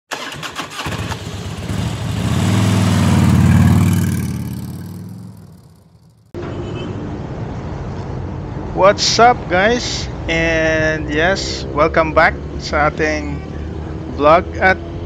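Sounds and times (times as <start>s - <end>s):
engine starting clicks: 0.1s - 1.6s
motor scooter road noise: 0.1s - 8.6s
motorcycle engine passing by: 0.8s - 6.3s.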